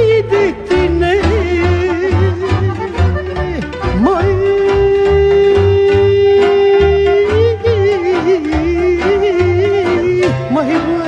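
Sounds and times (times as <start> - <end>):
folk party music: 0.0 - 11.0.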